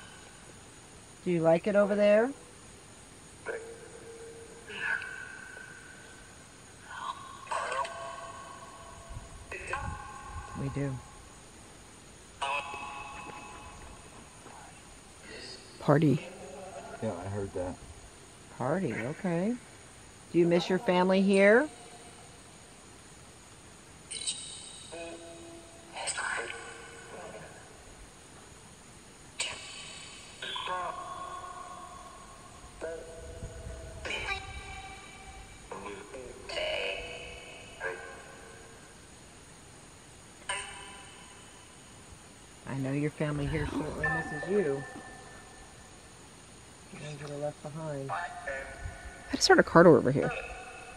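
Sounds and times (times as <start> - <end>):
electronic burst with ringing tones: 43.5 - 45.8.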